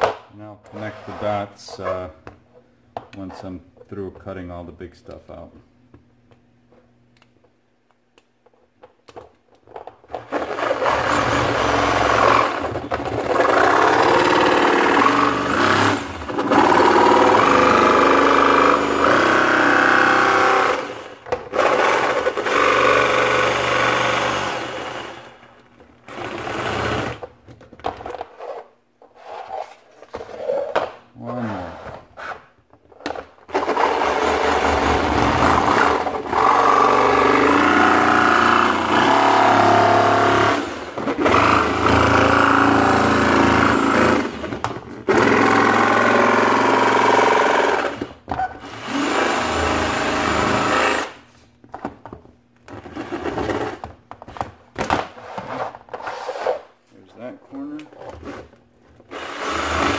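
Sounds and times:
jigsaw cutting plastic: 10.1s - 27.3s, 33.0s - 51.2s, 58.0s - 59.9s.

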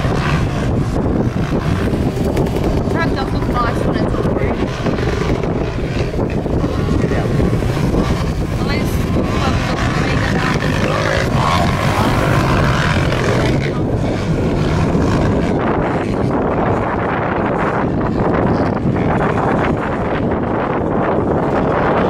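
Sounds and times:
distant motocross bike engines: 0.0s - 22.0s
wind buffeting microphone: 0.0s - 22.0s.

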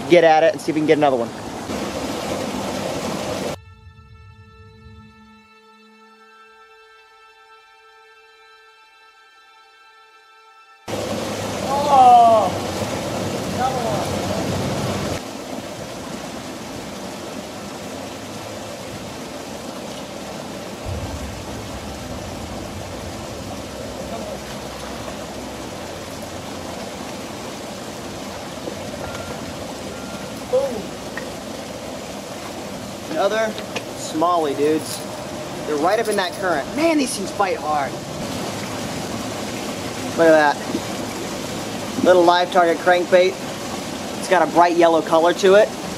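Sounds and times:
creek water running over rocks: 0.0s - 3.6s, 10.9s - 45.9s.

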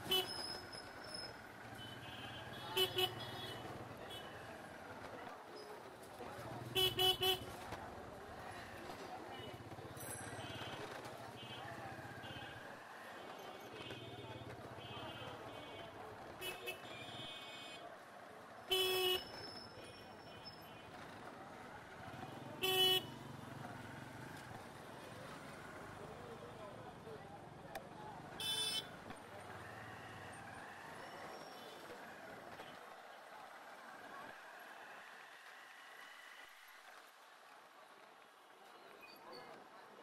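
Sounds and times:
street traffic noise: 0.0s - 40.0s.

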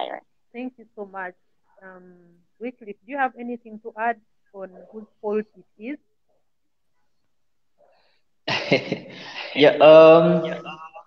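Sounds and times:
person speaking: 8.8s - 11.0s.

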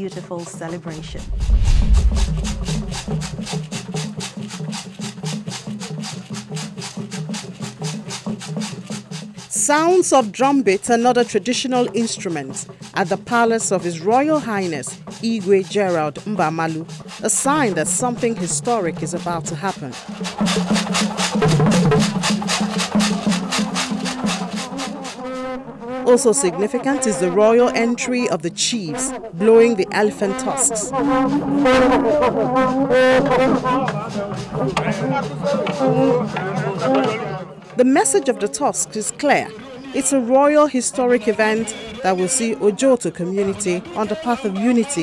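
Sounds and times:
drums and percussion rhythm: 0.0s - 45.0s
low drum tones: 0.1s - 4.0s
deep low rumble: 1.0s - 3.5s.

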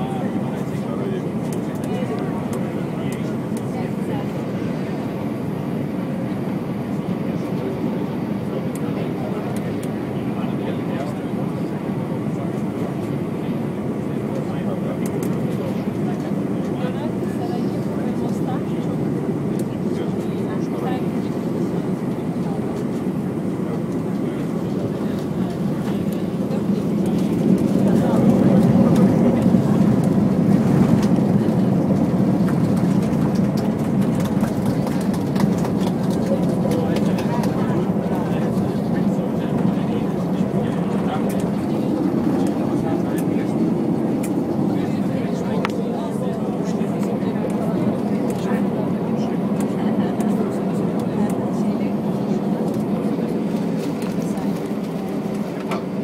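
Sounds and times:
airplane cabin rumble: 0.0s - 56.0s.

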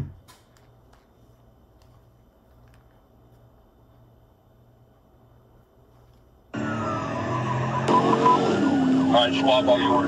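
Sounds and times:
car engine and road noise: 6.5s - 10.0s
police siren wailing: 6.6s - 10.0s.

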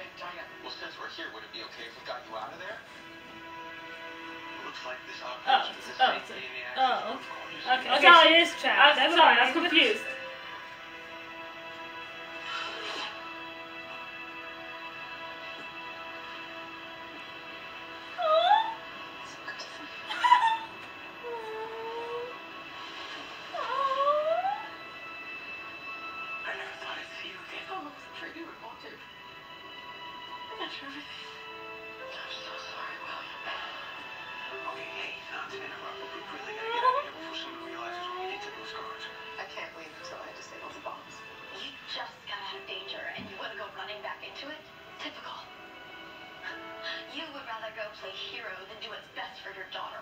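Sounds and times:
quiet dialogue: 0.0s - 22.5s, 25.7s - 50.0s
soft sustained music score: 0.0s - 50.0s
voice squealing: 20.1s - 22.3s.

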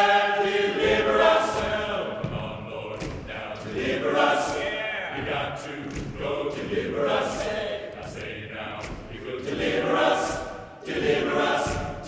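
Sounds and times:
men's chorus singing a cappella: 0.0s - 12.0s.

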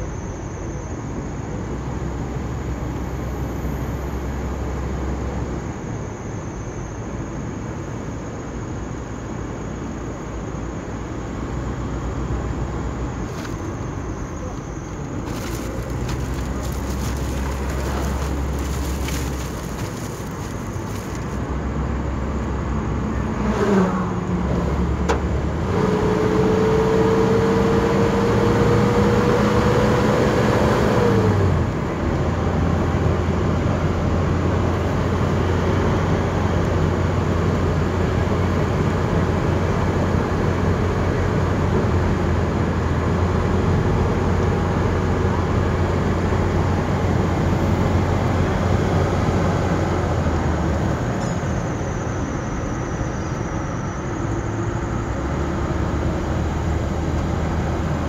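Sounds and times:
car engine hum: 0.0s - 58.0s
road noise: 0.0s - 58.0s.

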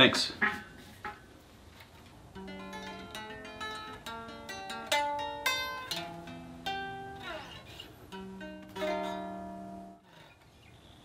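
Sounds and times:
electric guitar melody: 2.3s - 10.2s.

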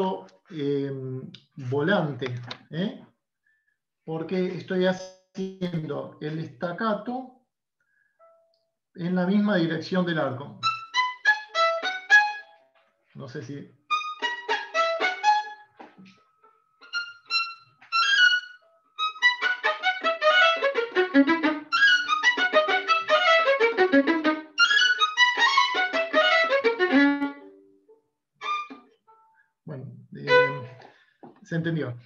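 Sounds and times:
violin staccato runs: 10.6s - 12.6s, 13.9s - 16.1s, 16.8s - 27.5s, 28.4s - 28.9s, 30.2s - 30.9s.

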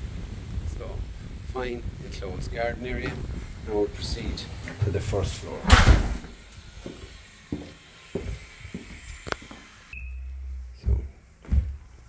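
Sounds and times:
footsteps on tiled floor: 6.2s - 9.7s, 10.7s - 12.0s.

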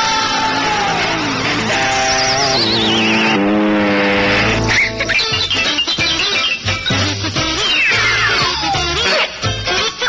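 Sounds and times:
cartoon theme music: 0.8s - 10.0s
warbling whistle-like glide: 2.1s - 3.6s.

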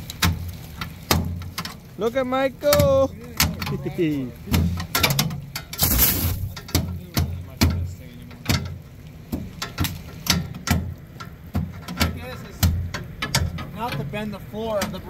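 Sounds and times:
metal bar chipping ice: 4.5s - 6.9s
scraping rush: 5.8s - 6.6s.

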